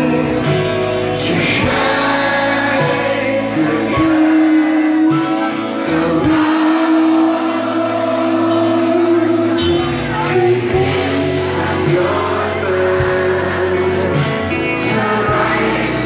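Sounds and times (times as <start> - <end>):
live band with electric guitars: 0.0 - 16.0
person singing: 0.0 - 16.0.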